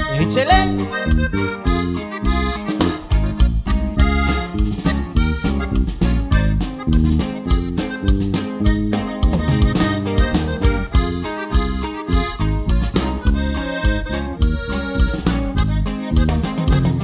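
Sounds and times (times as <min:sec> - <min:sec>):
button accordion melody: 0:00.0 - 0:17.0
drums keeping a beat: 0:00.0 - 0:17.0
electric bass: 0:00.0 - 0:17.0.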